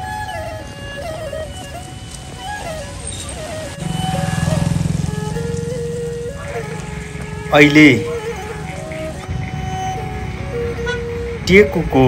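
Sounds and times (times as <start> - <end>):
background music: 0.0 - 12.0
vehicle engine passing: 0.8 - 12.0.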